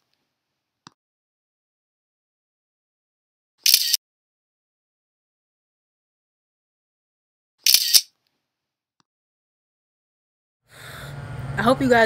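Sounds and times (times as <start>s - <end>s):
camera shutter double snap: 3.6s - 4.0s, 7.6s - 8.1s.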